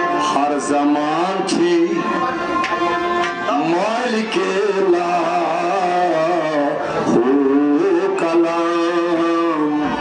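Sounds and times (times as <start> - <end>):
bowed and plucked strings: 0.0 - 7.3
harmonium: 0.0 - 10.0.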